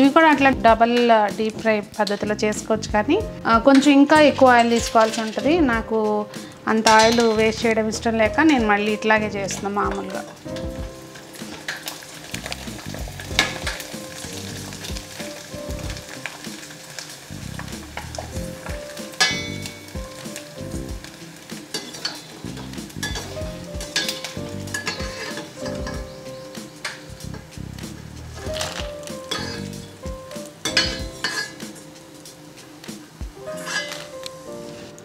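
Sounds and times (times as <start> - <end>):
dough sizzling in hot oil: 3.3 - 35.0.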